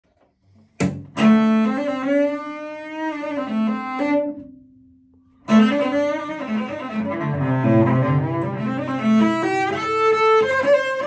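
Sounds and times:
electric cello bowed: 0:01.1 - 0:04.6, 0:05.4 - 0:11.0.

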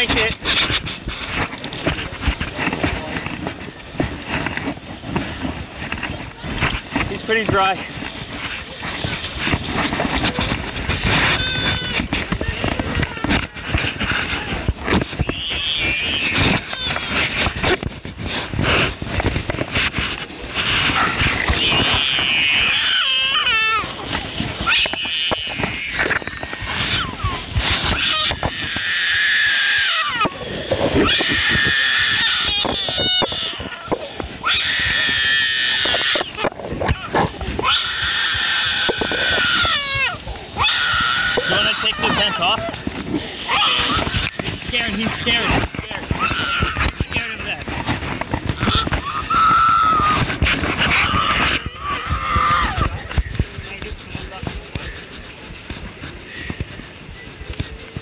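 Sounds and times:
hubbub of voices: 0:00.0 - 0:22.8, 0:38.4 - 0:58.0
foil blanket crinkling: 0:00.0 - 0:58.0
young children crying: 0:07.9 - 0:19.4, 0:20.6 - 0:47.2, 0:48.4 - 0:53.4.

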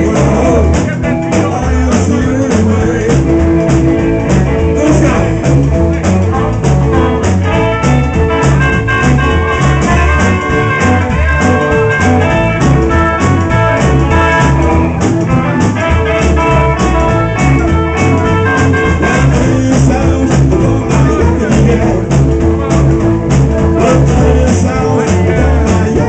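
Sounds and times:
rockabilly band playing: 0:00.0 - 0:26.0.

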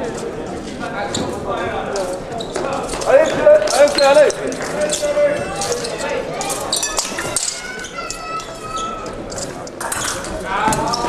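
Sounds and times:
voices echoing in a hall: 0:00.0 - 0:11.0
loud held voice: 0:03.1 - 0:09.3.

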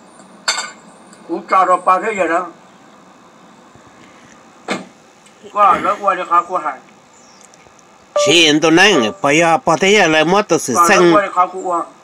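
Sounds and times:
faint steady hiss: 0:00.0 - 0:12.0
man speaking loudly: 0:08.2 - 0:11.6.

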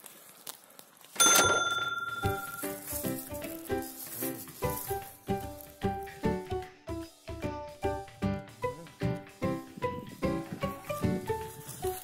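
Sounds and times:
bell-like chime: 0:01.2 - 0:03.0.

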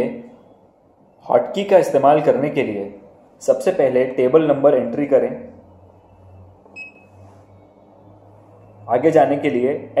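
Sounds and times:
low steady hum: 0:00.0 - 0:10.0
keypad beep: 0:06.6 - 0:07.6.

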